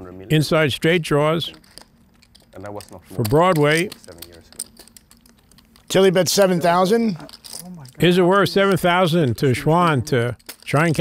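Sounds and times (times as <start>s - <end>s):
poker chips clicking: 1.4s - 11.0s.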